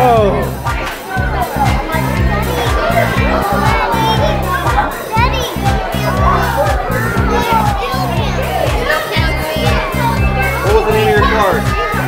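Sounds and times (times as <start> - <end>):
children chattering: 0.0 - 12.0
loud music with steady beat: 0.0 - 12.0.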